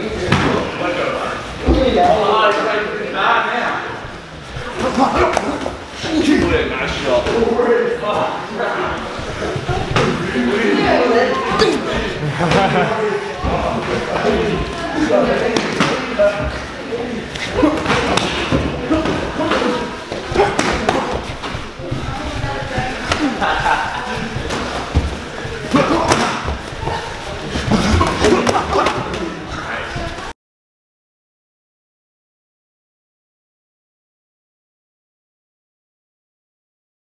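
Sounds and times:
people talking: 0:04.6 - 0:30.3.

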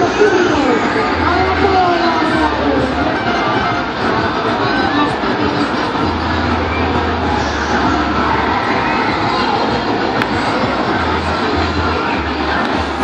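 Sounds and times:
crowd: 0:00.0 - 0:13.0.

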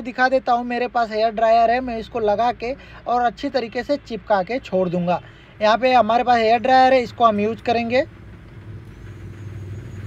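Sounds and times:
faint high whine: 0:08.7 - 0:10.0.

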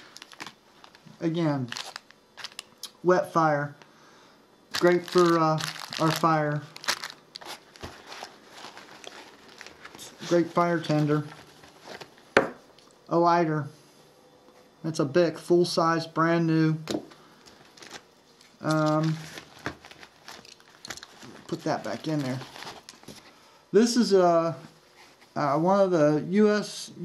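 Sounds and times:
rustles and clicks of handling pouch: 0:04.7 - 0:12.9, 0:16.9 - 0:23.4.

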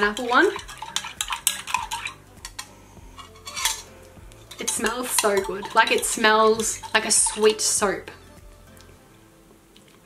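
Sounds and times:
teaspoon clinking against glass: 0:00.0 - 0:03.9, 0:04.5 - 0:07.7.

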